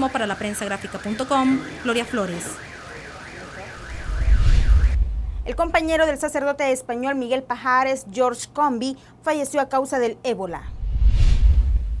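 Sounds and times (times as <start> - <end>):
warbling electronic siren: 0.0 - 5.9
loud low rumble: 3.9 - 6.1, 10.7 - 12.0.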